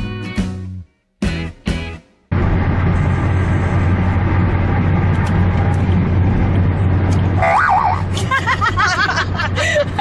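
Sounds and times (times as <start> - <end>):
car interior engine and road noise: 2.3 - 10.0.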